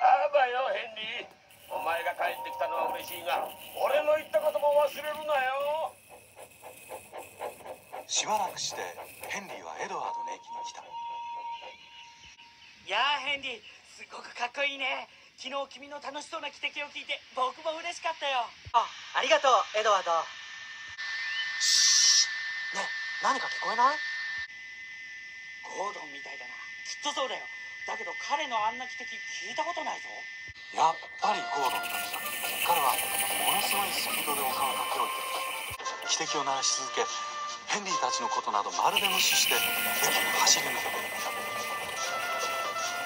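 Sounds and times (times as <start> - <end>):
steam locomotive whistle: 10.1 - 12.2, 31.3 - 43.0
steam whistle shrill note: 10.1 - 12.2, 38.9 - 43.0
background music: 31.4 - 43.0.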